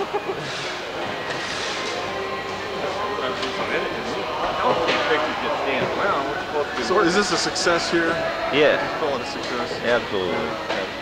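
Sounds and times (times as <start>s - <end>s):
indistinct voices: 0.0s - 11.0s.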